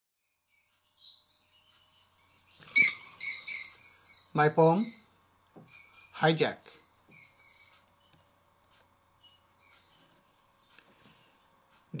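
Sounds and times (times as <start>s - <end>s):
parrot chirping: 0.8s - 5.1s, 5.7s - 8.1s.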